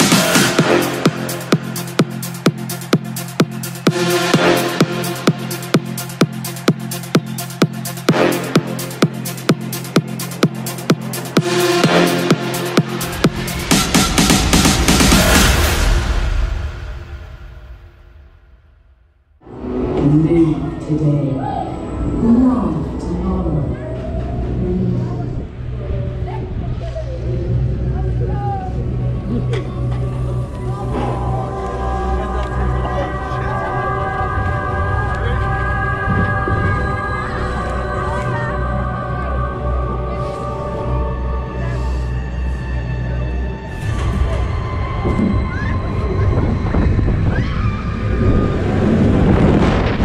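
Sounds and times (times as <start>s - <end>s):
voices: 19.9s - 48.1s
rising squeal: 43.6s - 50.0s
roller coaster car rumbling on track: 43.7s - 50.0s.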